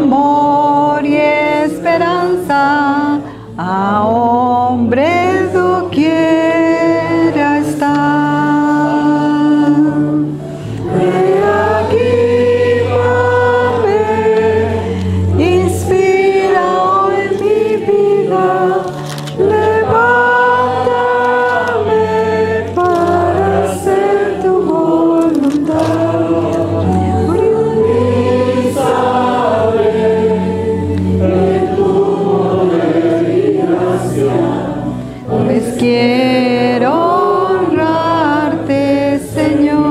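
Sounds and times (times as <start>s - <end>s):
congregation singing along: 0.0s - 39.9s
women singing a hymn: 0.0s - 39.9s
sustained accompaniment notes: 8.2s - 39.9s.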